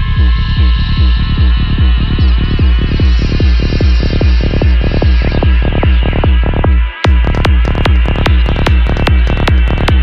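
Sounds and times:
psytrance music: 0.0s - 10.0s.

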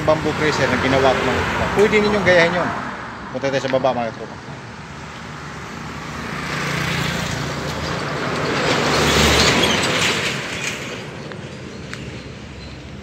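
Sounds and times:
vehicle passing by: 0.0s - 11.1s.

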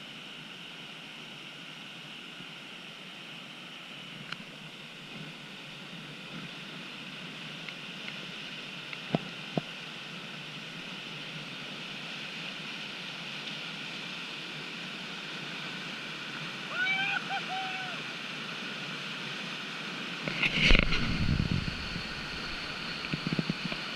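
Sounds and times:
whitewater rapids rushing: 4.6s - 23.9s
person calling out: 16.7s - 18.0s.

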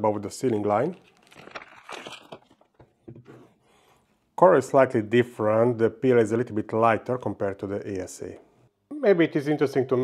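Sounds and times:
plastic bag rustling: 0.5s - 2.8s.

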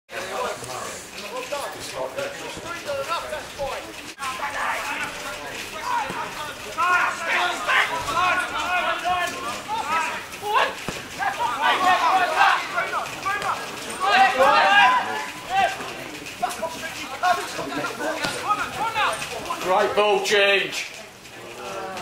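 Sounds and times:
players shouting: 0.2s - 22.0s.

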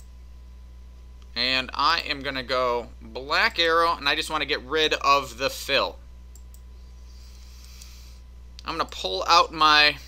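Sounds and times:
low electrical hum: 0.0s - 10.0s
computer mouse clicks: 6.3s - 6.6s, 7.6s - 8.0s.

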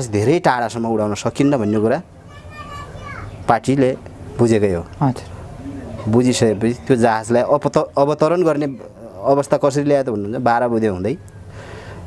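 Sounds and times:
man speaking: 3.5s - 11.2s.

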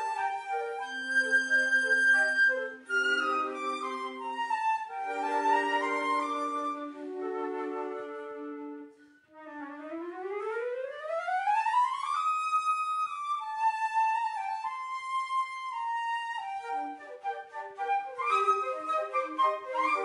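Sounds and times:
flute and clarinet ensemble: 0.0s - 20.0s.

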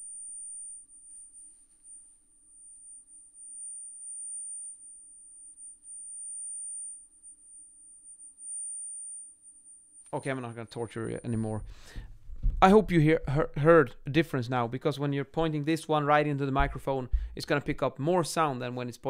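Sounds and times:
high-pitched sine tone: 0.0s - 11.9s.

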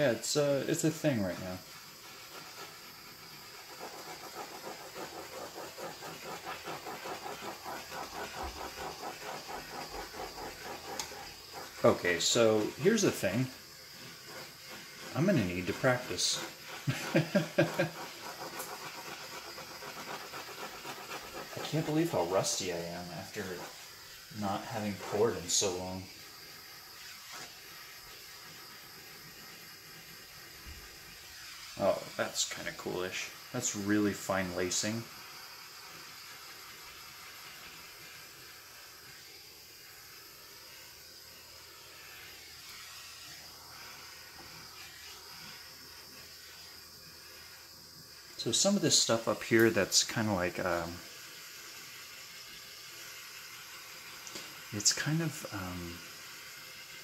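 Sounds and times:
torch flame hissing: 0.0s - 57.0s.

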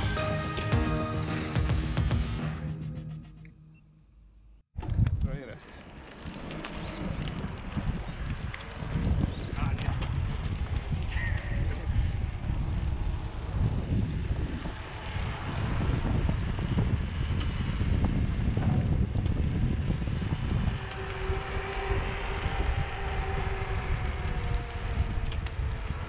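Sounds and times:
wind buffeting microphone: 4.8s - 26.0s.

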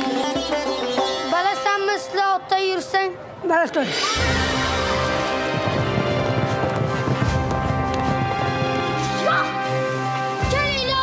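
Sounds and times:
music with long held notes: 0.0s - 2.5s, 3.9s - 11.0s
horses galloping: 4.4s - 9.5s.

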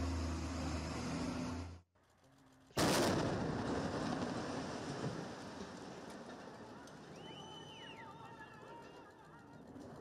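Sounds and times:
loud explosion with rumble: 2.8s - 6.0s.

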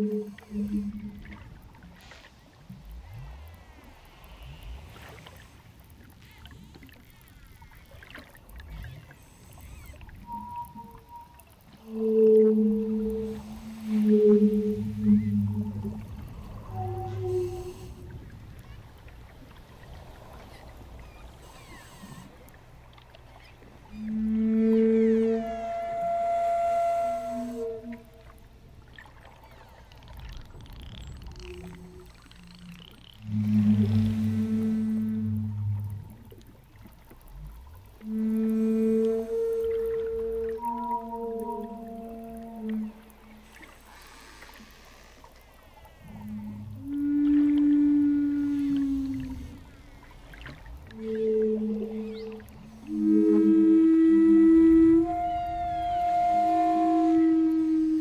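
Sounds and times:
wooden flute playing long notes: 0.0s - 1.6s, 9.6s - 18.3s, 23.9s - 28.4s, 33.2s - 36.4s, 37.9s - 43.7s, 46.0s - 49.9s, 50.5s - 58.0s
whale song moans and squeals: 0.0s - 58.0s
lower drone tone: 9.6s - 18.3s, 37.6s - 43.7s
wooden flute held note: 24.0s - 28.3s, 38.0s - 43.2s, 51.0s - 58.0s.

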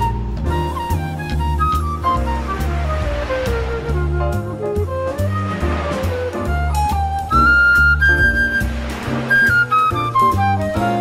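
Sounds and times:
swing jazz melody: 0.0s - 11.0s
noisy wash: 1.8s - 4.2s, 4.9s - 10.4s.

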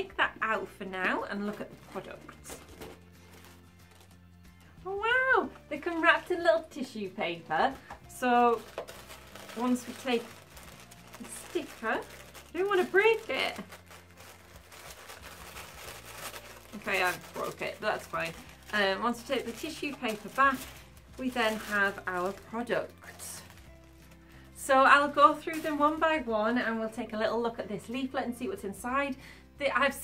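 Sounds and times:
woman speaking: 0.0s - 2.4s, 9.5s - 10.3s, 11.2s - 13.7s, 16.8s - 23.5s, 24.6s - 30.0s
faint background music: 0.0s - 30.0s
tissue paper crinkling: 1.6s - 4.2s, 7.7s - 26.3s.

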